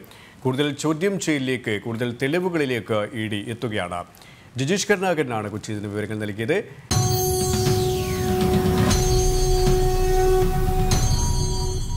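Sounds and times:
sudden music hit: 6.9 - 11.9.

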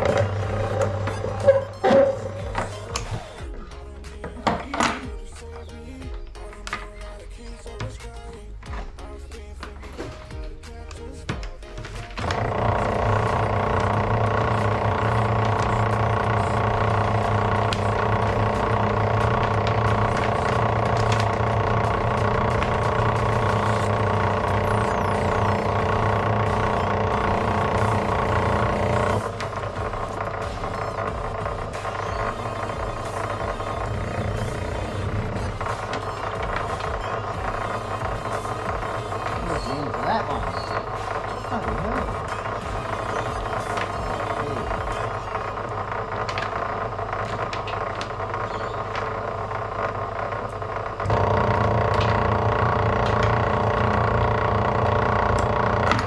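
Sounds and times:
wire stripping machine humming: 0.0 - 56.0.

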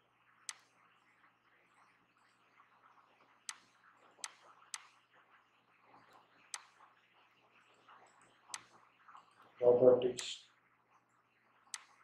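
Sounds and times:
computer mouse clicking: 3.5 - 4.9, 11.7 - 12.0.

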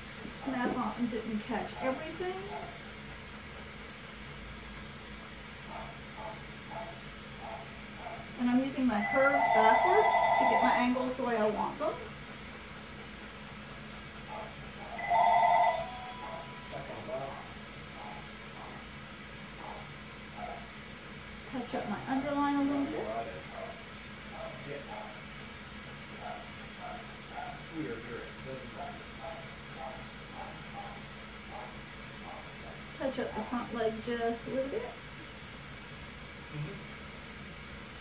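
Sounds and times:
electronic ringing tone: 9.0 - 11.0, 15.0 - 16.6.

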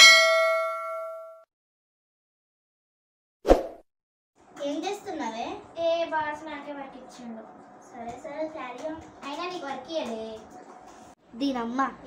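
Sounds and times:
bell-like ding: 0.0 - 1.5.

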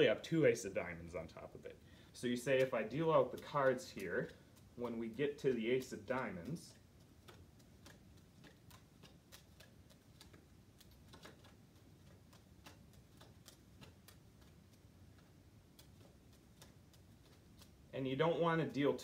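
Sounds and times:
playing cards dealt soft ticks: 2.2 - 18.9.

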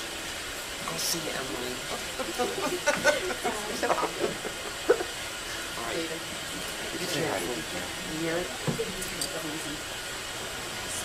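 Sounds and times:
room noise hiss: 0.0 - 11.0
distant people talking quietly: 5.7 - 11.0.

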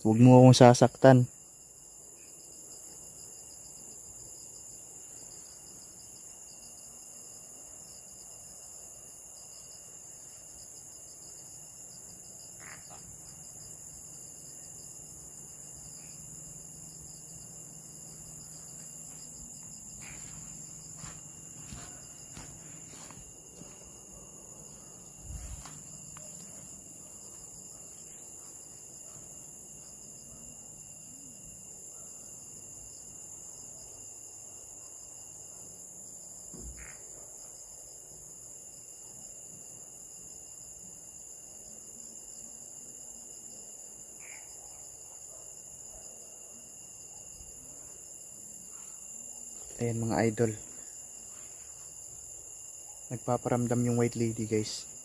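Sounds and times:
crickets and insects chirping: 0.0 - 55.0.

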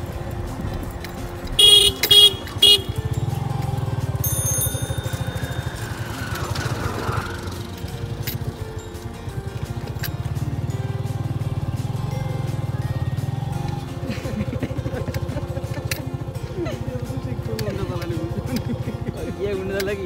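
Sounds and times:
motorcycle engine running: 0.0 - 20.0
horn toots: 1.6 - 3.4.

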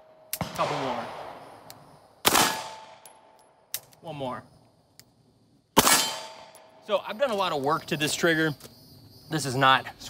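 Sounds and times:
pistol shot: 0.3 - 3.2, 5.8 - 6.7.

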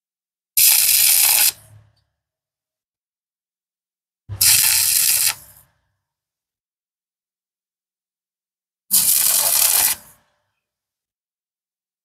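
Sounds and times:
welding arc hissing: 0.6 - 1.6, 4.4 - 5.5, 8.9 - 10.2.

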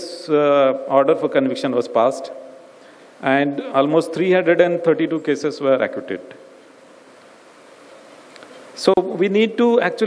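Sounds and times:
man speaking: 0.0 - 2.5, 3.2 - 6.4, 8.8 - 10.0
faint microphone hum: 0.0 - 10.0.

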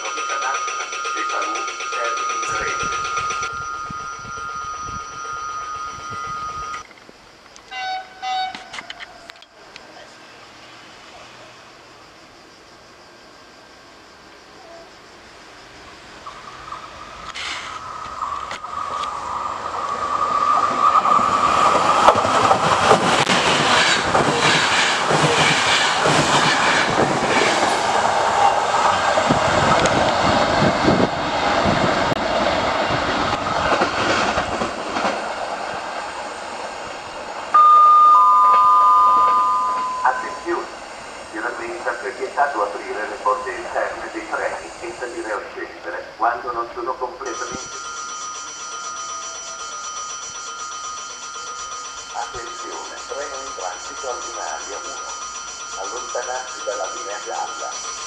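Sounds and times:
train rumbling and clattering past: 0.0 - 7.4, 15.3 - 58.0
two-note electronic tone: 37.6 - 40.7
voice over loudspeaker: 40.0 - 40.7, 41.4 - 47.7.

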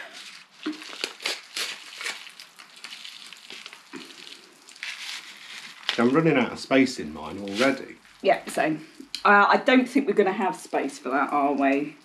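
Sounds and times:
popping candy crackling: 0.0 - 9.3.

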